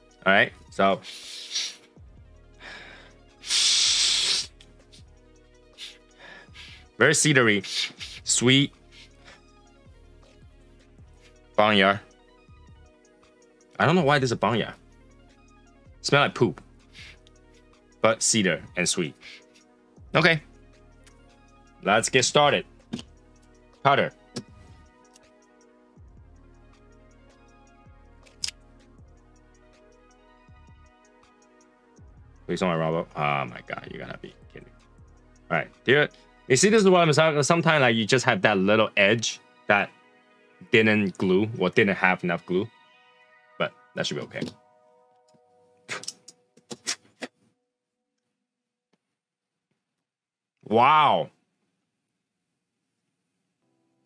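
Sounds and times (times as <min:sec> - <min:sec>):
soft background music: 0:00.0 - 0:46.7, 0:53.6 - 0:54.0
person sniffing through nose: 0:01.0 - 0:01.9, 0:03.4 - 0:04.6, 0:05.8 - 0:06.0, 0:07.6 - 0:08.3.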